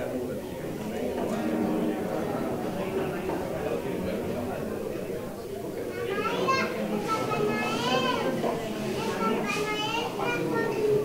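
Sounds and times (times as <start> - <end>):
murmur of crowded room: 0.0 - 11.0
children talking and calling out: 1.3 - 11.0.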